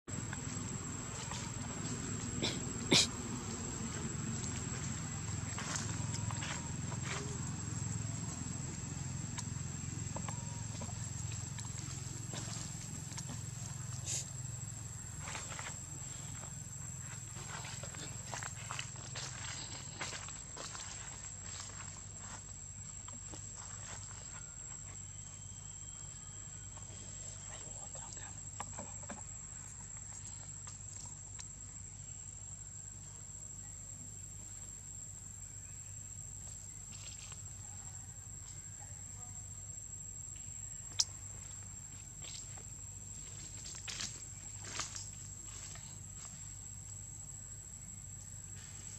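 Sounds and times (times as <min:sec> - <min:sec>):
high-pitched insect drone: 0:00.1 - 0:28.5, 0:29.9 - 0:48.9.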